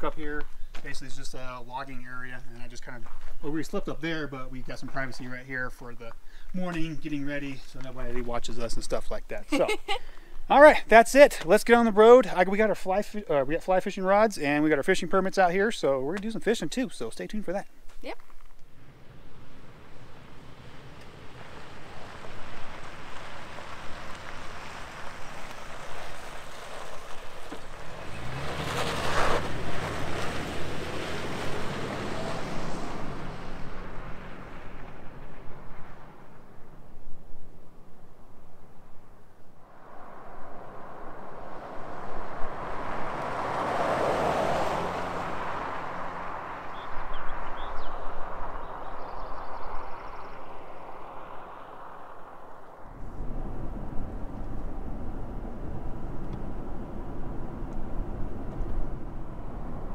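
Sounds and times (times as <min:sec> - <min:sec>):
vehicle driving on gravel: 0:00.0 - 0:09.2, 0:18.1 - 0:59.9.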